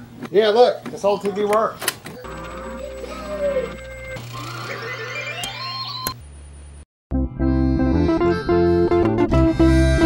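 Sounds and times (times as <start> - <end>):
electronic tones rising in pitch: 2.2 - 6.2.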